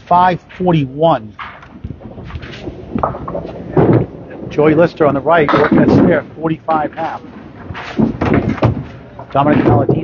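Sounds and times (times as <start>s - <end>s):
bowling balls rolling: 1.3s - 10.0s
balls and pins clattering: 1.4s - 4.5s, 5.4s - 6.2s, 7.3s - 10.0s
loud thud: 1.4s - 4.7s, 5.4s - 6.3s, 7.4s - 9.0s.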